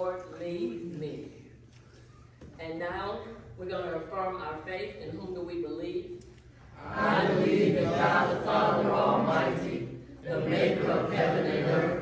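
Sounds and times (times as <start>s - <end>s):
congregation chanting in unison: 6.8s - 12.0s.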